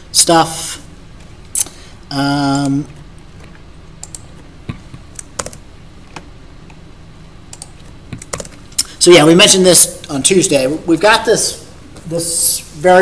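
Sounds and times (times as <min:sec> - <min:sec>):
computer keyboard typing: 0:04.0 - 0:04.4, 0:05.1 - 0:05.6, 0:07.5 - 0:08.6.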